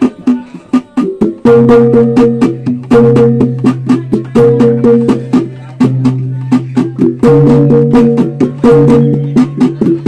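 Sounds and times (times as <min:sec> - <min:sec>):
rapid sharp drum strikes: 0:00.0 - 0:10.0.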